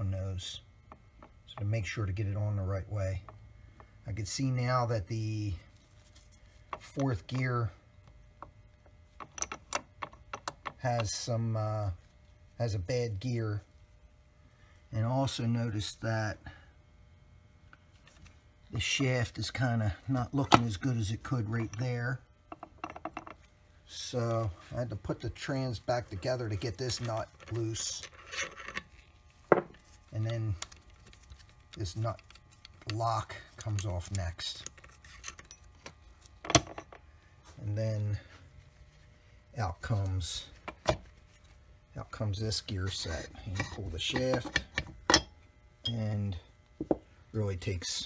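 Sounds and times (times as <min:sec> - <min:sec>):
faint rubbing of metal parts: 0:00.1 - 0:13.1, 0:17.8 - 0:45.2.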